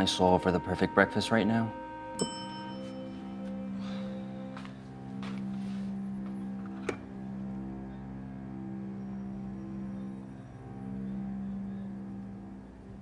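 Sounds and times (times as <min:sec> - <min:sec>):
low ambient drone: 0:00.0 - 0:13.0.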